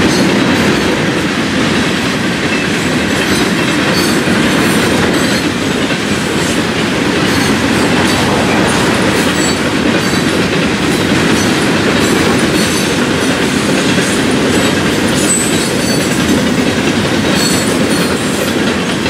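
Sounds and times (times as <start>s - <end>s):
steel wheels rumbling on rail: 0.0s - 19.0s
clicking from train trucks: 11.7s - 19.0s.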